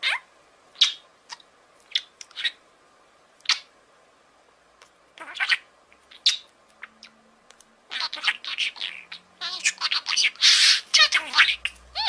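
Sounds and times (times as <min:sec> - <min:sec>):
parrot high-pitched calls: 0:00.0 - 0:02.6, 0:03.4 - 0:03.7, 0:05.2 - 0:07.2, 0:07.9 - 0:12.0.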